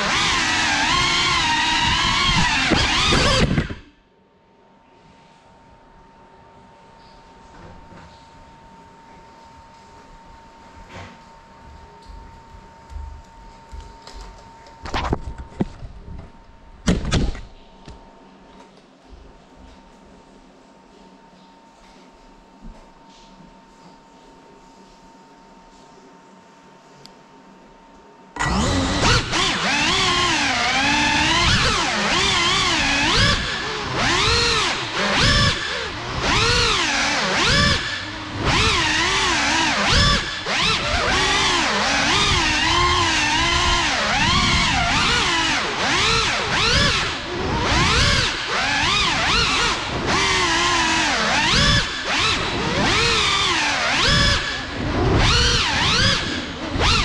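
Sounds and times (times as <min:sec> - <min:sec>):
drone motors whining: 0:00.0 - 0:04.0, 0:28.4 - 0:57.0.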